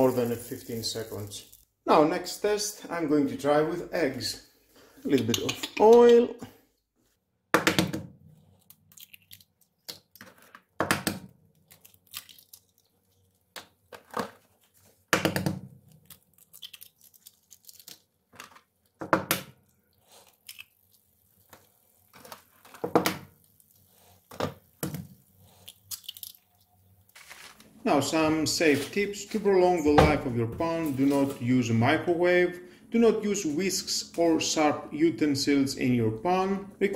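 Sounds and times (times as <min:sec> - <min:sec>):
eggshells crunching: 0:08.5 - 0:10.4, 0:11.6 - 0:14.8, 0:15.8 - 0:18.9, 0:19.6 - 0:22.7, 0:25.4 - 0:27.7
eggs cracking on a pan rim: 0:08.7 - 0:10.4, 0:11.6 - 0:13.8, 0:15.3 - 0:18.1, 0:20.3 - 0:23.6, 0:25.6 - 0:26.7.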